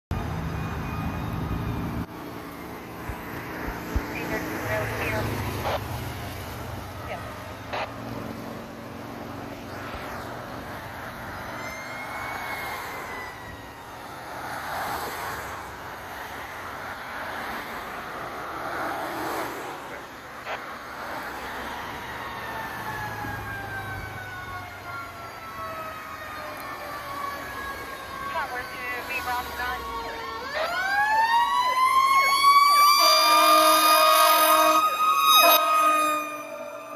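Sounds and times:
vehicle engine rumble: 0.1s - 12.4s
distant fire truck siren: 0.1s - 36.9s
light traffic noise: 0.1s - 36.9s.

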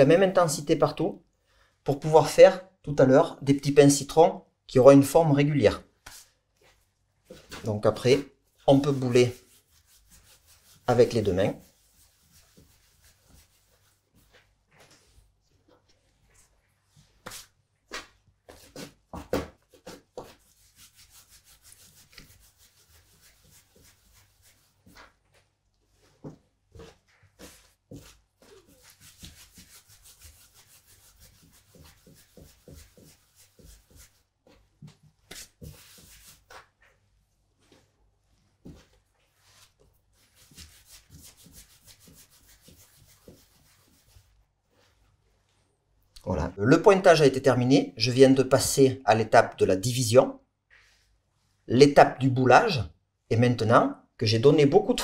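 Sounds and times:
hands rubbing dough: 5.7s - 50.0s, 50.6s - 52.2s.

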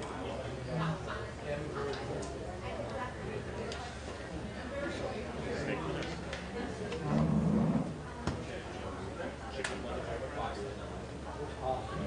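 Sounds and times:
audience chatter: 0.0s - 12.0s.

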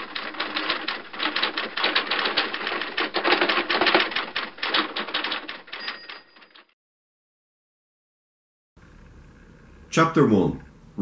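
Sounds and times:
typewriter key clacks: 0.0s - 6.7s.

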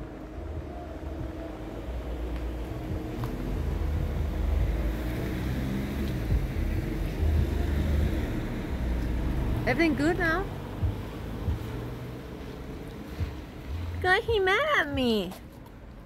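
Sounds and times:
low outdoor rumble: 0.0s - 16.0s.

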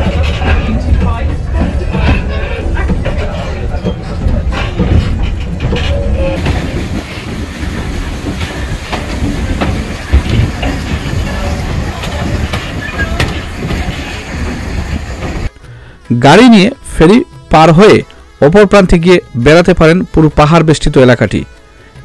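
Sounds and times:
train rumbling on rails: 0.0s - 15.5s
wheels clattering over rail joints: 0.0s - 15.5s.

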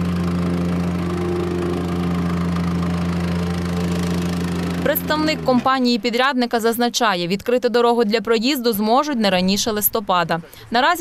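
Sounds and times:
plate compactor humming: 0.0s - 6.5s.

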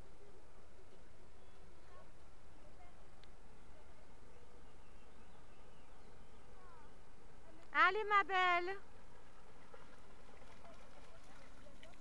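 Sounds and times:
dog splashing in water: 9.4s - 12.0s.

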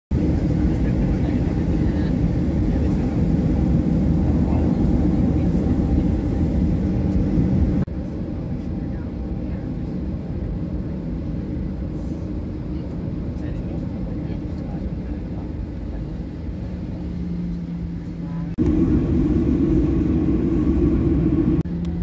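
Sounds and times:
jet engines rumbling in cabin: 0.1s - 22.0s.

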